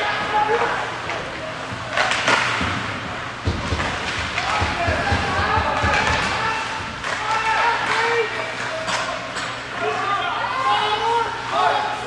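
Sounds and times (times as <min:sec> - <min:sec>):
puck cracking against boards: 0:01.9 - 0:08.0.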